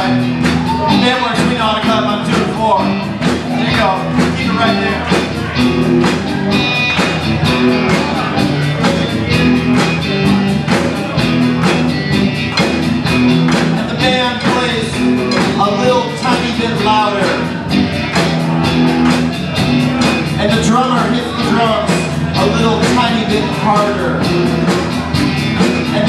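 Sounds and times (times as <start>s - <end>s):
rock band playing: 0.0s - 26.0s.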